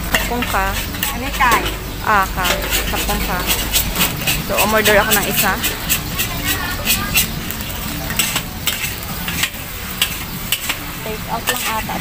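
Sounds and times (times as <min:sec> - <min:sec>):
frying sizzle: 0:00.0 - 0:12.0
metal utensils clinking on pan: 0:00.0 - 0:12.0.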